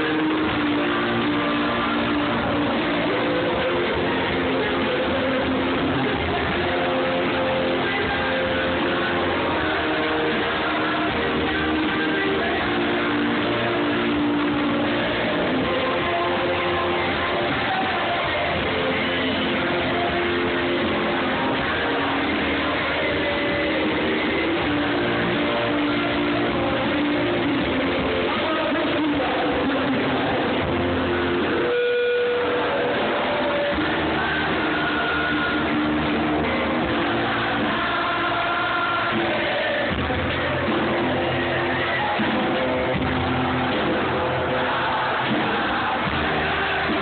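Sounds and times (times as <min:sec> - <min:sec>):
live rock band playing: 0:00.0 - 0:47.0.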